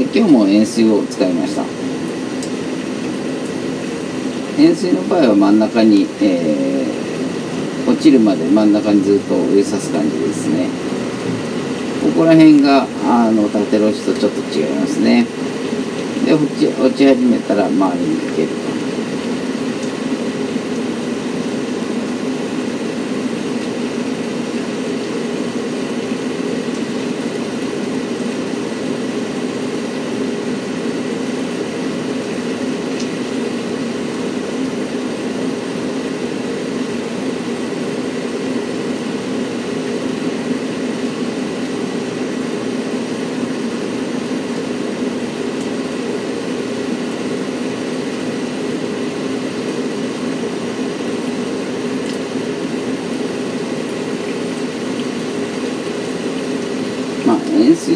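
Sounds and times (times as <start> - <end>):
faint high whine: 0.0 - 57.9
mechanical hum with hiss: 0.0 - 57.9.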